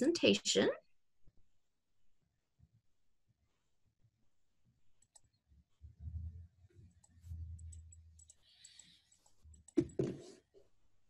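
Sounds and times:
computer clicking: 0:05.0 - 0:05.4, 0:06.9 - 0:10.0
low dull bumps: 0:05.8 - 0:08.0.

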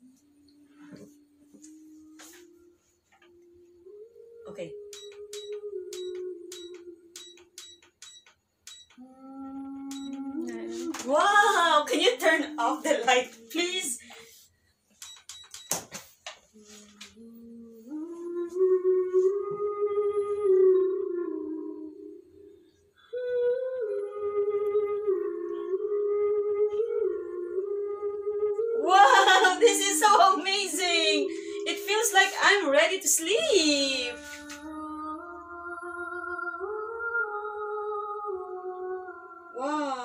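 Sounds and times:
soft lullaby from a speaker: 0:00.0 - 0:13.7, 0:16.5 - 0:40.0
lullaby melody from small speaker: 0:04.8 - 0:09.1, 0:09.9 - 0:10.6.

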